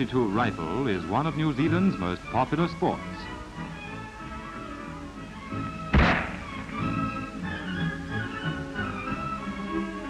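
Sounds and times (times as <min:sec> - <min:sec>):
background music: 0:00.0 - 0:10.0
rifle shot: 0:05.9 - 0:06.6.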